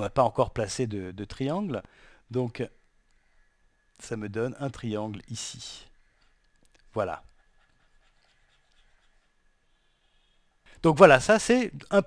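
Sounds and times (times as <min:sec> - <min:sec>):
stylus scratching on drawing tablet: 0:07.3 - 0:10.4.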